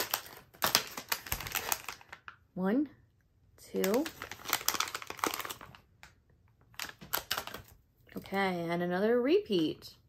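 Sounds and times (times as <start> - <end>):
plastic wrapper crackling: 0.0 - 2.4, 3.7 - 7.8.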